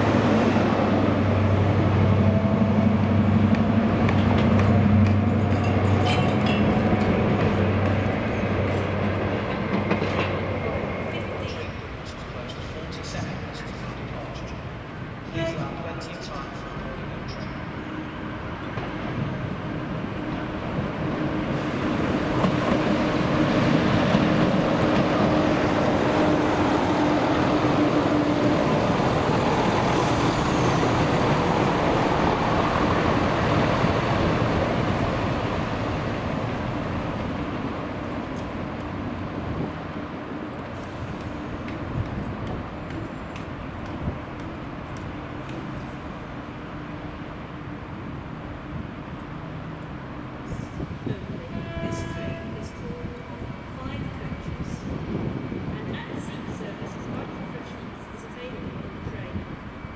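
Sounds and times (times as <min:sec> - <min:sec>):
diesel train passing: 0:00.0 - 0:59.9.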